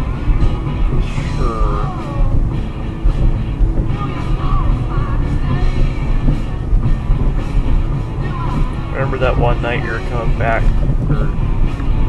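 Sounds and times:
car cabin rumble: 0:00.0 - 0:12.0
rock music: 0:00.0 - 0:12.0.

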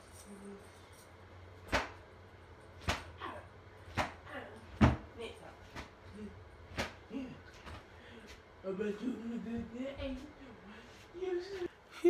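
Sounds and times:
sharp smacks: 0:01.7 - 0:02.0, 0:02.8 - 0:03.1, 0:03.9 - 0:04.2, 0:06.7 - 0:07.0.

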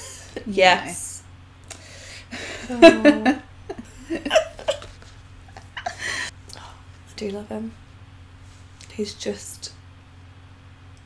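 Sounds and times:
women laughing: 0:02.3 - 0:06.3.

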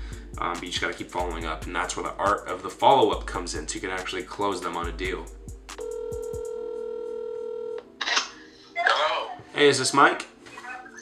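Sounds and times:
telephone ringback tone: 0:05.8 - 0:07.8.

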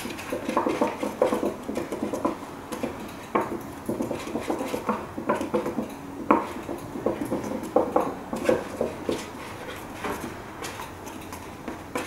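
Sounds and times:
palette knife scraping paper plate: 0:03.9 - 0:05.5.

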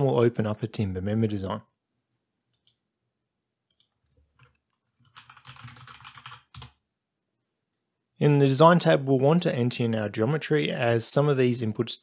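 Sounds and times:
faint computer keyboard typing: 0:02.5 - 0:02.8, 0:03.6 - 0:06.8.

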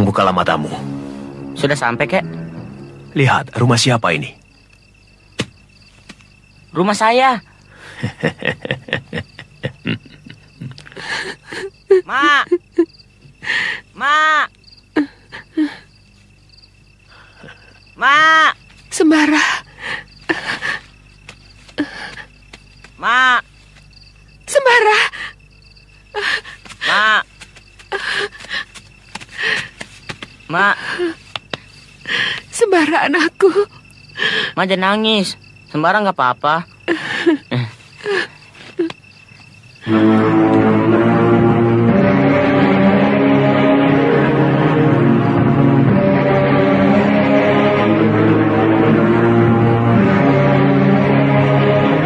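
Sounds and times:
crickets chirring: 0:00.0 - 0:52.0
people laughing: 0:07.9 - 0:10.8.

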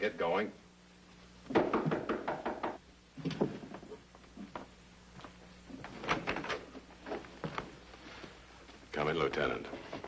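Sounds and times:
rapid knocking on a door: 0:01.5 - 0:02.8.

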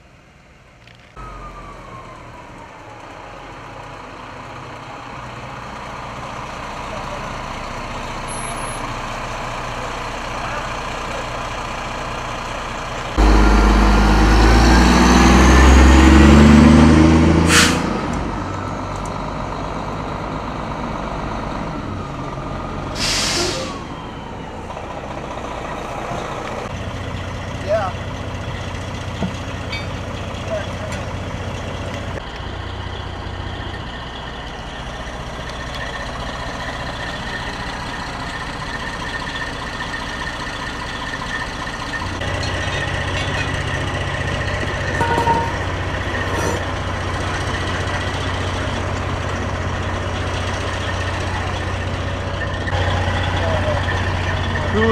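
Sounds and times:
fire engine diesel rumble: 0:00.0 - 0:54.9
air brake hiss: 0:17.5 - 0:17.9, 0:22.9 - 0:23.9.

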